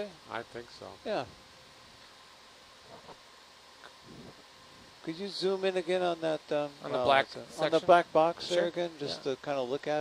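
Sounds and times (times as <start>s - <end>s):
faint steady room hiss: 0.0s - 10.0s.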